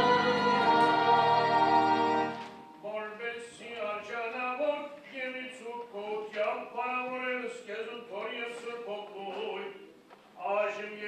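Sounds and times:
children's choir singing: 0.0 - 2.7
person singing slow line: 0.0 - 3.2.

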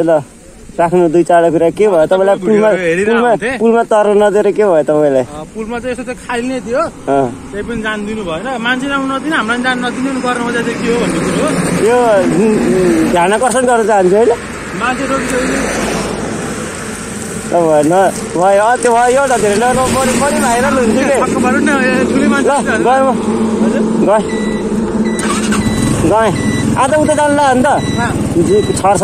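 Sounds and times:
man speaking: 0.0 - 15.8, 17.5 - 24.7, 25.9 - 29.0
men's voices: 0.0 - 29.0
vehicle engine idling: 0.0 - 29.0
thin beep: 24.2 - 29.0.

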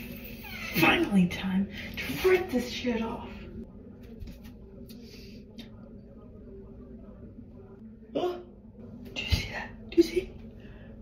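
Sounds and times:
faint steady hum: 2.6 - 11.0.

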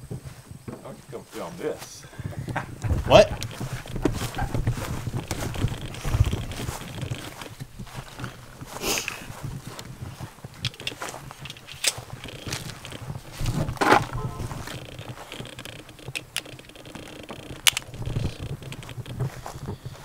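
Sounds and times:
footsteps on grass: 0.0 - 16.1, 16.9 - 20.0
camera handling noise: 10.6 - 19.2.

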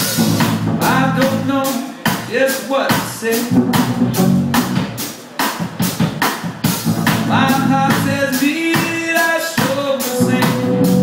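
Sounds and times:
bass guitar: 0.0 - 1.9, 2.9 - 5.1, 6.7 - 8.5, 9.7 - 11.0
drum kit hits: 0.0 - 11.0
saxophone and trombone notes: 3.3 - 5.0, 10.0 - 11.0.

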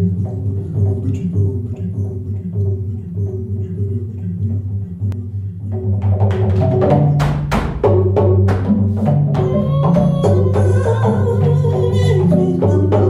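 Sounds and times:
wooden slit drum struck with mallets: 5.9 - 13.0.

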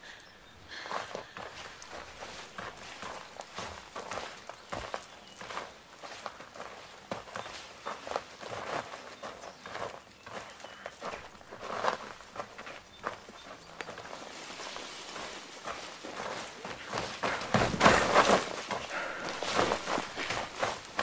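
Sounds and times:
footsteps walking: 0.7 - 21.0.

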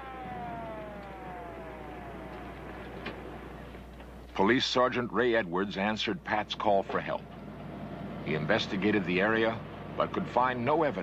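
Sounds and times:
police siren: 0.0 - 4.3
vehicle rumble: 6.3 - 11.0.

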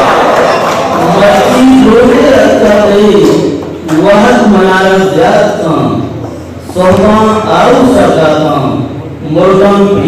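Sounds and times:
man chanting poetry: 6.7 - 10.0.

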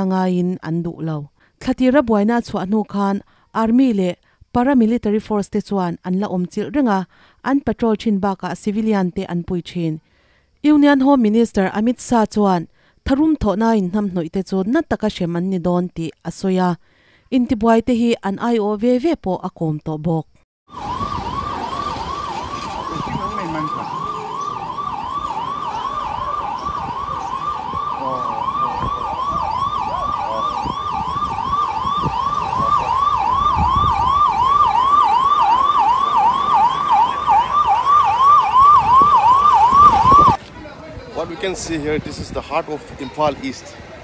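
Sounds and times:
vehicle siren yelping: 20.7 - 40.4.

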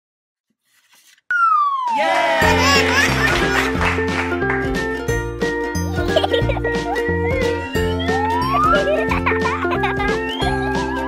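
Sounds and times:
whistle-like tone gliding down: 1.3 - 2.0
music: 2.3 - 11.0.

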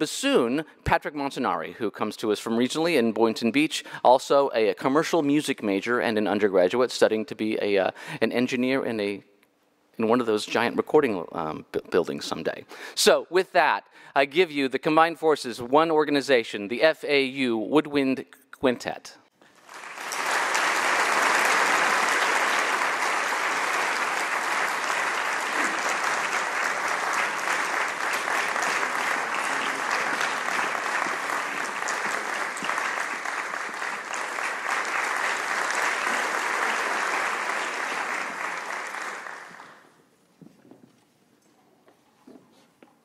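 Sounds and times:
audience applauding: 19.4 - 39.9.

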